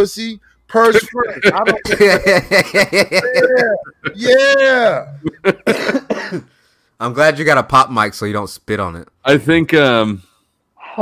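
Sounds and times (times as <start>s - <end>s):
man coughing: 1.0s - 2.2s, 3.2s - 4.4s, 5.2s - 6.5s.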